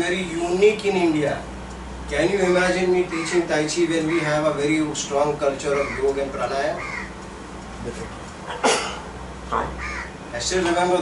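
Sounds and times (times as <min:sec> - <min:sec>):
crow cawing: 0:03.1 - 0:04.5, 0:05.7 - 0:07.2, 0:09.6 - 0:10.2.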